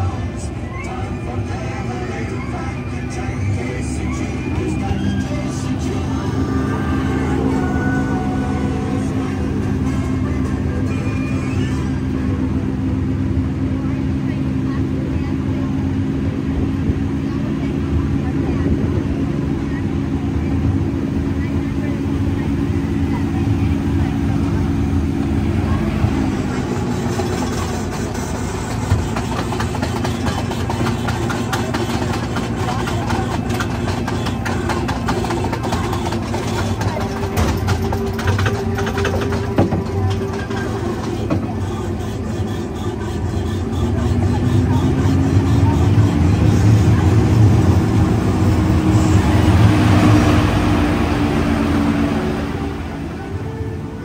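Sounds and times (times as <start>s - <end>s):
wheels clicking on rails: 0.0s - 16.0s, 19.7s - 54.0s
low engine drone: 0.0s - 54.0s.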